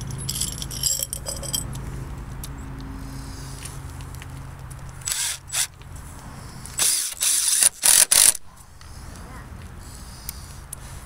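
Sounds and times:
power drill driving a screw: 5.0s - 5.7s, 6.8s - 8.4s.

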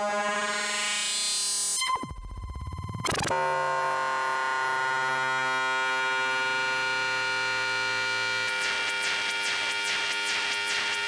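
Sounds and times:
sustained synthesizer tones: 0.0s - 11.0s.

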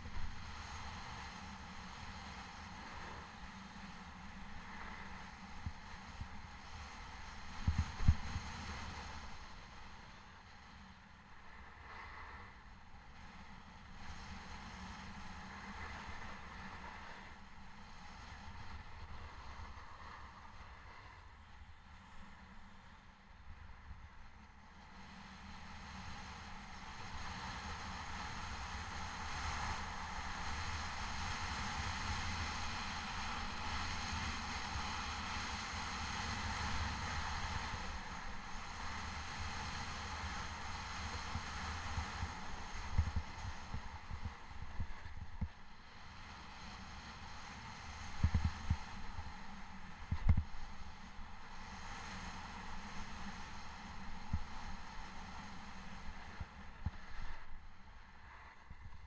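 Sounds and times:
wind rumbling on microphone: 0.0s - 59.0s.

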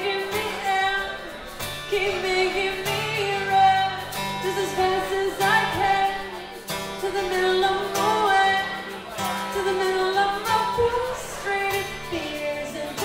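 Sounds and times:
strummed acoustic guitar: 0.0s - 13.0s
woman singing slow melody: 0.0s - 13.0s.

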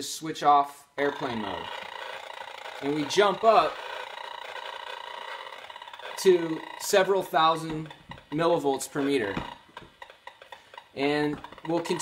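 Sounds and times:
pulsing electronic buzz: 1.0s - 12.0s.

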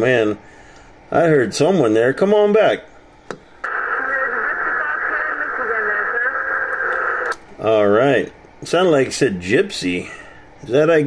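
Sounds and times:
muffled radio static: 3.6s - 7.4s.

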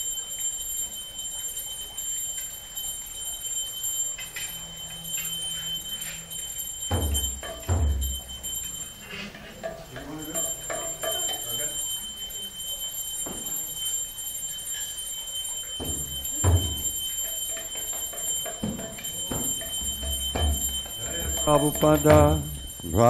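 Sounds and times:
low thuds and knocks: 6.9s - 8.3s, 15.8s - 17.1s, 17.8s - 22.8s.

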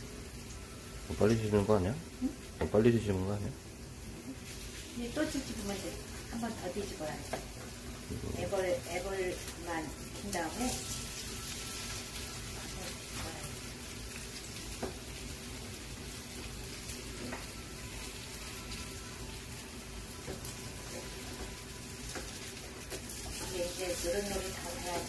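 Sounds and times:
pancakes sizzling in oil: 0.0s - 25.0s.

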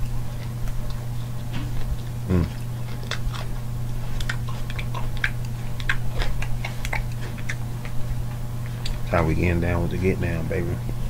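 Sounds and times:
person chewing crunchy salad: 0.0s - 9.1s
steady low hum: 0.0s - 11.0s.

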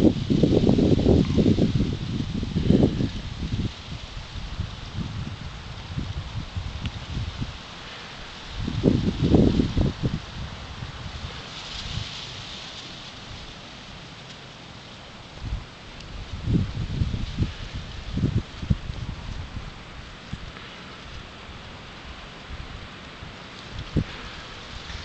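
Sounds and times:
steady outdoor hiss: 0.0s - 25.0s.

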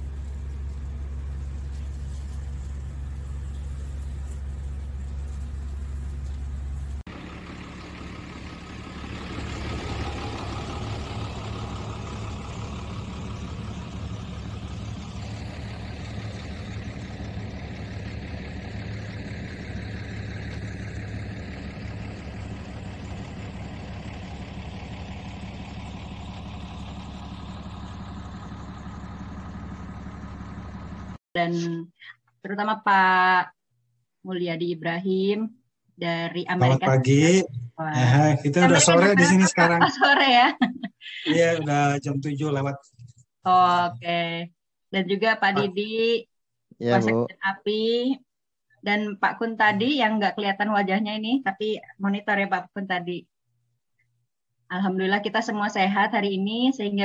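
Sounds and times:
engine running rumble: 0.0s - 33.4s, 36.0s - 46.2s, 46.8s - 48.1s, 48.9s - 52.4s.

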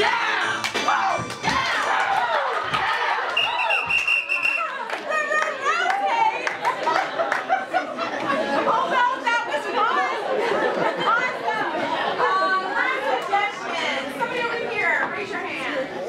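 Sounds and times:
overlapping chatter of voices: 0.0s - 16.0s.

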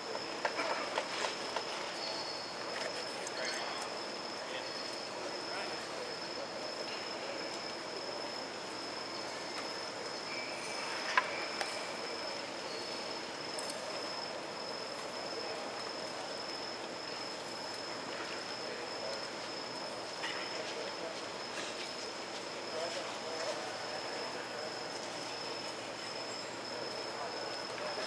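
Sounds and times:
high steady whine: 0.0s - 28.0s
indoor arena background noise: 0.0s - 28.0s.

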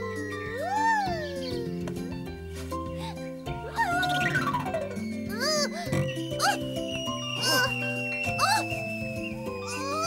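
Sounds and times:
cartoon background music: 0.0s - 10.0s
cartoon character yelping: 3.7s - 4.5s.

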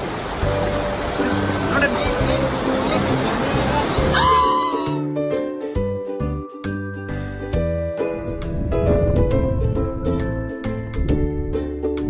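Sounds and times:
river rapids rushing: 0.0s - 5.0s
person shouting: 4.0s - 5.1s.

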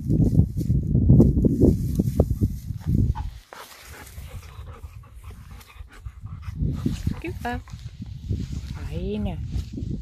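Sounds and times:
rustling in grass: 0.0s - 10.0s
dog panting: 3.2s - 7.4s.

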